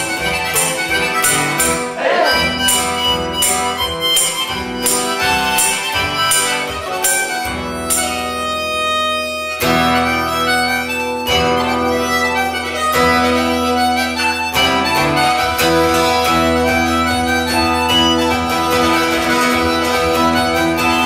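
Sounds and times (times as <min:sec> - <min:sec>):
acoustic guitar strumming: 0:00.0 - 0:21.0
harmonica long held notes: 0:00.0 - 0:21.0.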